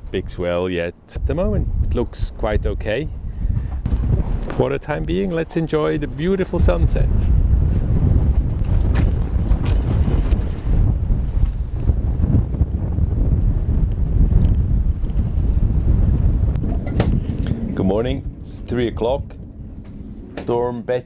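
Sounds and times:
wind blowing across microphone: 0.0 - 21.0.

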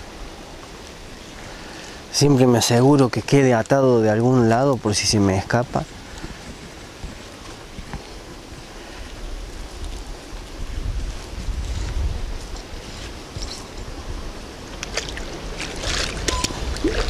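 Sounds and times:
wind buffeting microphone: 4.7 - 17.0.

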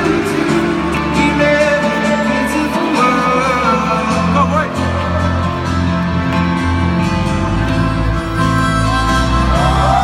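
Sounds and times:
person singing: 0.0 - 5.6, 7.7 - 10.0
guitar: 0.0 - 10.0
live pop band playing: 0.0 - 10.0.

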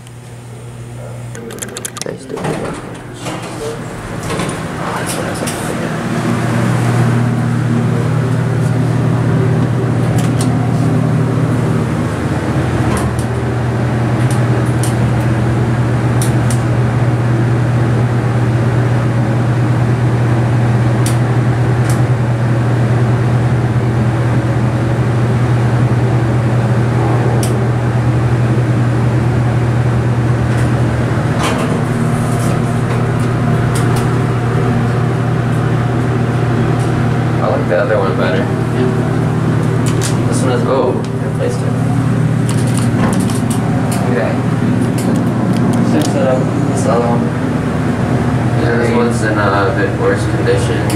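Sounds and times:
elevator pump motor humming: 0.0 - 50.9.

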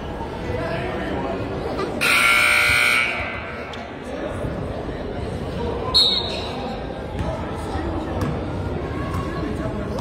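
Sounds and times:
scoreboard buzzer: 2.0 - 3.5.

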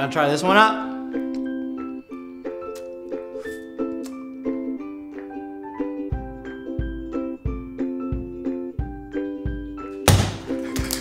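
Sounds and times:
ice cream splatting on wood: 10.0 - 11.0.

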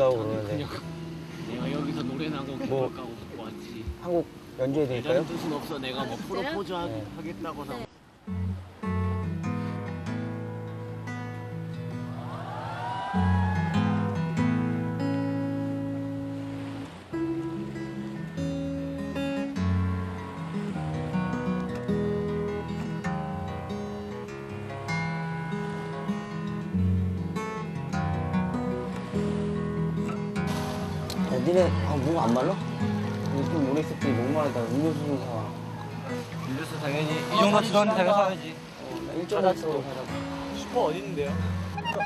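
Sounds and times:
acoustic guitar playing: 0.0 - 42.0.

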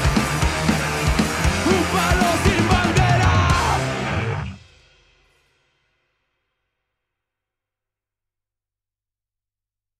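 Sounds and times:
punk rock band final chord: 0.0 - 4.7.

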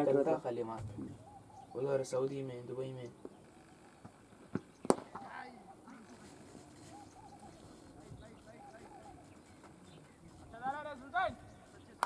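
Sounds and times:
distant players calling: 0.0 - 12.0.

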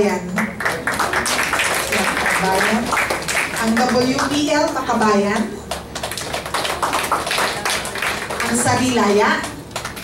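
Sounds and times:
audience clapping: 0.3 - 10.0.

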